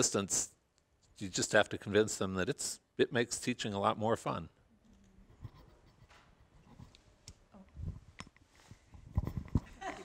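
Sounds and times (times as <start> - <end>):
microphone handling rustle and knocks: 5.3 - 10.0.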